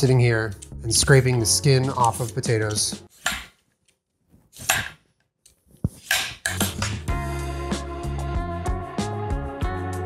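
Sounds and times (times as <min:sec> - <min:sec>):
background music with beat: 0:06.8 - 0:10.0.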